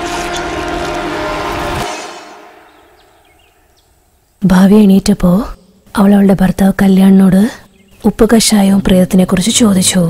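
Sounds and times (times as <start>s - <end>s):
eerie horn-like drone: 0.0s - 4.2s.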